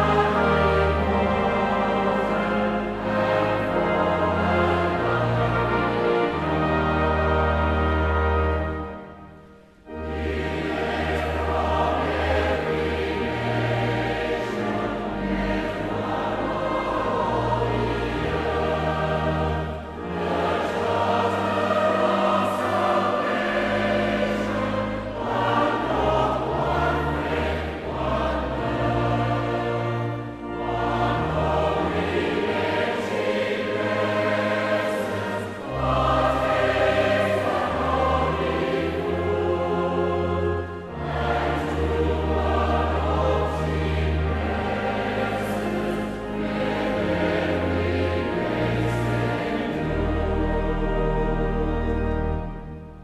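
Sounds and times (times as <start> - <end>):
choir singing a hymn: 0.0 - 53.0.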